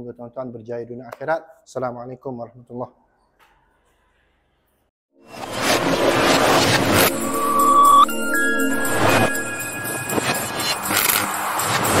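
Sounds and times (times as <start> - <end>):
whooshes: 5.2 - 12.0
short music sting: 5.3 - 11.3.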